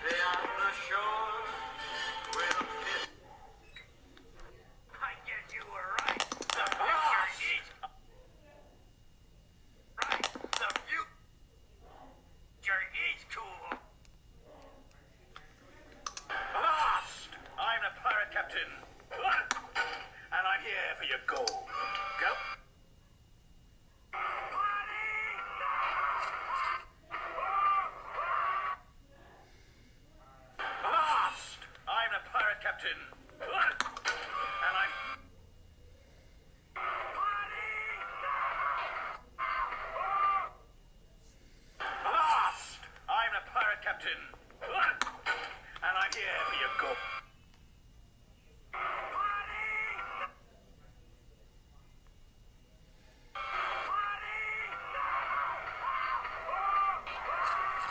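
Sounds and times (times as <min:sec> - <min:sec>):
cartoon character voices: 0:05.0 - 0:07.9, 0:16.4 - 0:19.7, 0:24.2 - 0:28.8, 0:30.7 - 0:35.0, 0:36.8 - 0:40.6, 0:42.0 - 0:45.0, 0:48.7 - 0:50.4.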